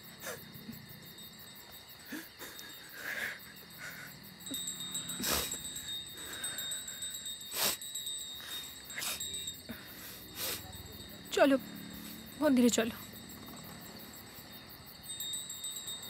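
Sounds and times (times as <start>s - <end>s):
high insect chirring: 0.0s - 16.0s.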